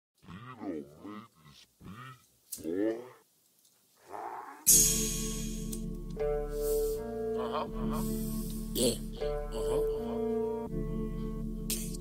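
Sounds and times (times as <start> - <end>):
man's deep drawn-out vocal sound: 7.0 - 10.6.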